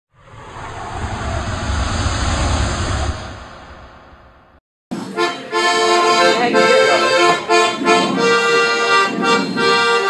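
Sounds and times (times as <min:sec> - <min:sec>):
whoosh with deep rumble: 0:00.1 - 0:04.6.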